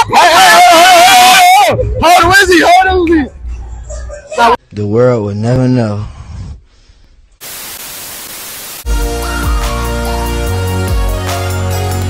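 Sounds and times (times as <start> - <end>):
hissing static noise: 7.4 - 8.9
electronic music: 8.2 - 12.0.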